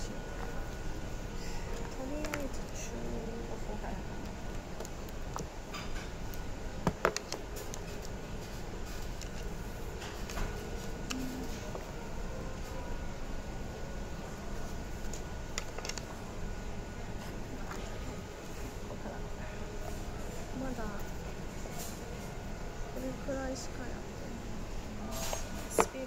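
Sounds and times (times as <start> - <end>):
faint hum: 0.0 - 26.0
handling books and objects: 0.3 - 3.0, 6.8 - 12.8, 14.5 - 16.3, 17.1 - 19.1.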